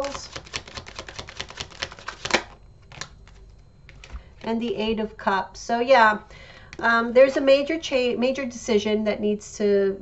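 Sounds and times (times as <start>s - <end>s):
cards shuffling: 0.0s - 4.3s.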